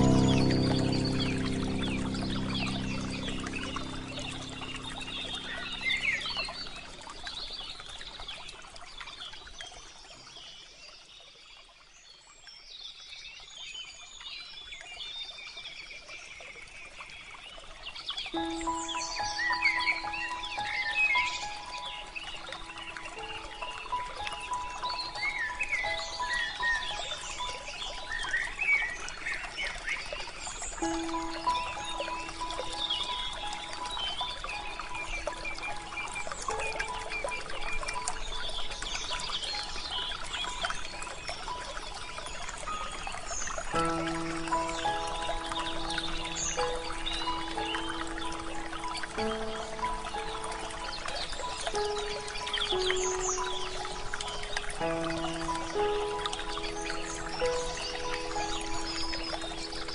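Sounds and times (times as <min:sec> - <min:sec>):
soft relaxation music: 0:00.0 - 0:10.2, 0:13.4 - 0:59.9
small birds chirping: 0:00.0 - 0:11.7, 0:12.5 - 0:59.9.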